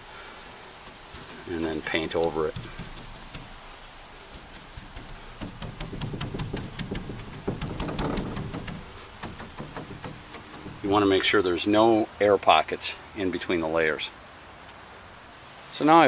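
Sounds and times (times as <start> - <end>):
paintbrush dabbing wet resin: 0.8 - 11.0.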